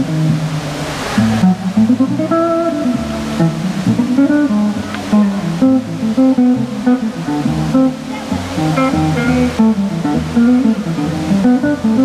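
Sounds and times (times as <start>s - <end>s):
solo guitar playing chords: 0.0s - 12.0s.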